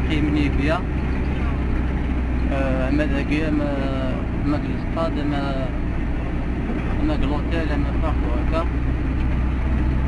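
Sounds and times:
bus engine rumble inside cabin: 0:00.0 - 0:10.0.

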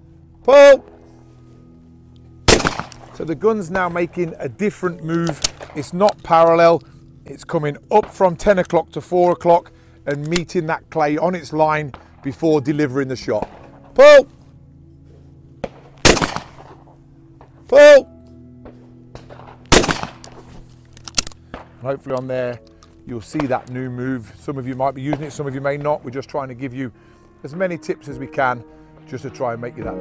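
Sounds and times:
shotgun shot: 0:02.5 - 0:03.2, 0:15.6 - 0:16.8, 0:18.7 - 0:20.4.

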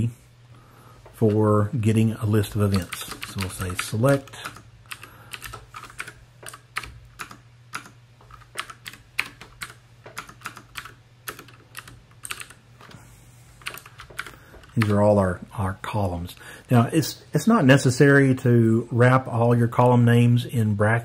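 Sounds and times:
steady low hum: 0:00.0 - 0:21.0
keyboard typing clicks: 0:02.5 - 0:13.0, 0:13.6 - 0:15.0.

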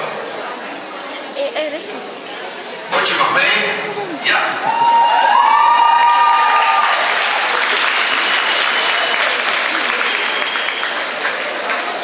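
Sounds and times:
audience applauding: 0:04.7 - 0:12.0.

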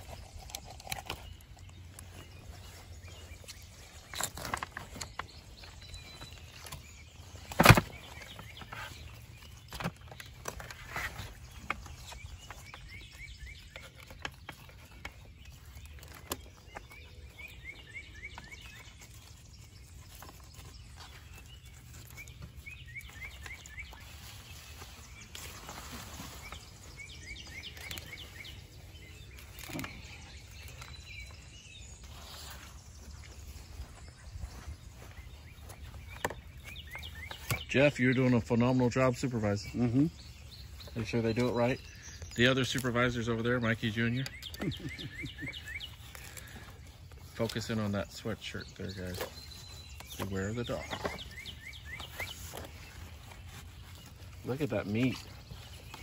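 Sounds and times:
bird trilling: 0:43.3 - 0:47.3.

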